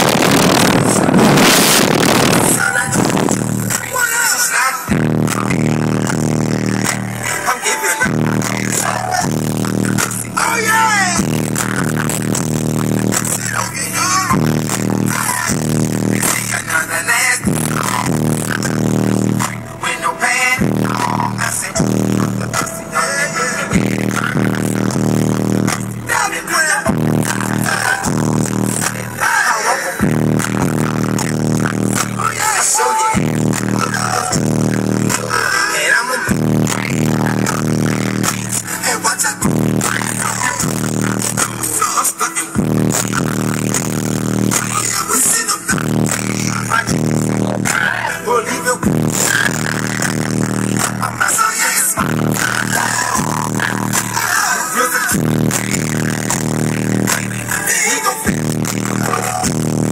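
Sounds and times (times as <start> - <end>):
heavy subwoofer bass: 0.0 - 59.9
loud song with vocals: 0.0 - 59.9.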